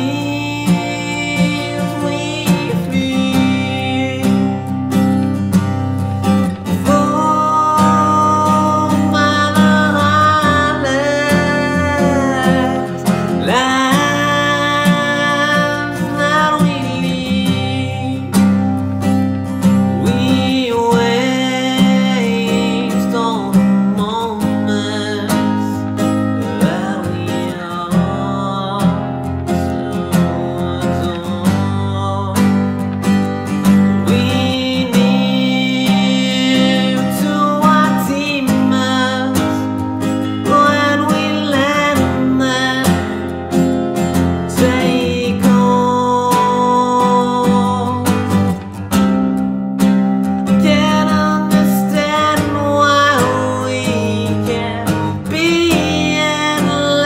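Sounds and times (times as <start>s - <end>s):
acoustic guitar song: 0.0s - 57.0s.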